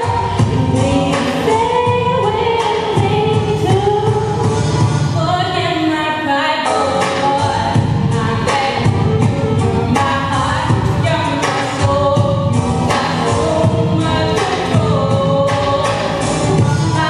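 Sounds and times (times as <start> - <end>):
girls singing in harmony: 0.0 - 4.2, 9.8 - 17.0.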